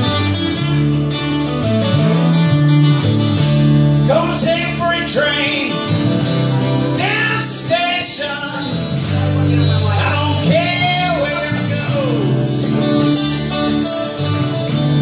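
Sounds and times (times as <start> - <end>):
acoustic guitars strumming: 0.0 - 15.0
person singing: 4.1 - 6.0, 6.6 - 12.8.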